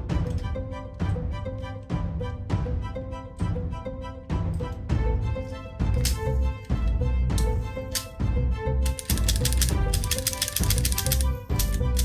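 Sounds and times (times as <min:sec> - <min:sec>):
background music: 0:00.0 - 0:12.0
toy revolver cylinder clicking: 0:08.8 - 0:12.0.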